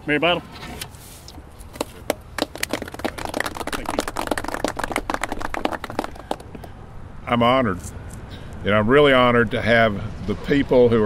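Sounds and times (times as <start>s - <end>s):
small group applauding: 2.1s - 6.7s.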